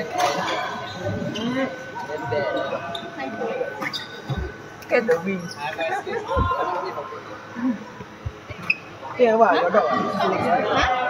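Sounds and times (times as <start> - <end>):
people talking: 0.0 - 7.8.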